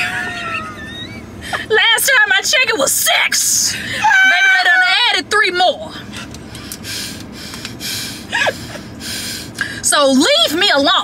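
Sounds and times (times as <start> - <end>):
wheezing laughter: 0.0 - 1.6, 8.2 - 8.9.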